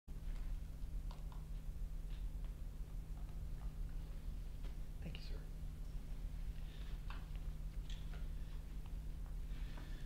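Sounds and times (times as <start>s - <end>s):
steady low hum: 0.1s - 10.0s.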